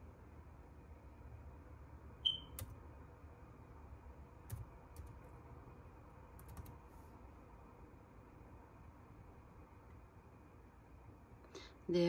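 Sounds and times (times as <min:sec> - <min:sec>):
high-pitched chirp: 0:02.2 - 0:02.6.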